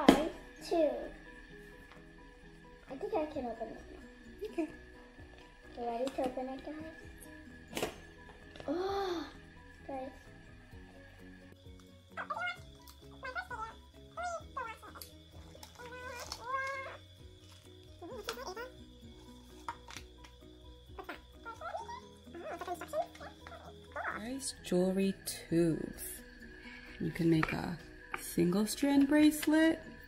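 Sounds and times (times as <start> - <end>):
light background music: 0.0 - 30.0.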